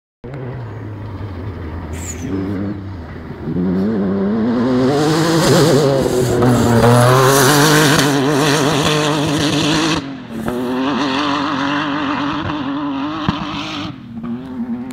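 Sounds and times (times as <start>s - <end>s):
race car engine at high revs: 0.2s - 14.9s.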